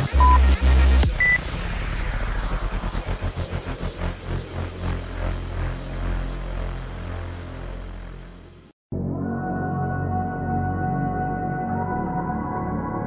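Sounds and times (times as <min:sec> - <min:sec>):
electronic dance music: 0:00.0 - 0:08.7.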